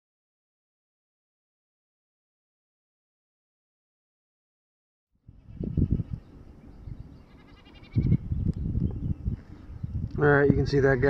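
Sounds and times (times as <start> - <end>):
wind gusting on microphone: 5.2 - 11.0
distant goat bleating: 5.3 - 6.3, 7.2 - 8.2.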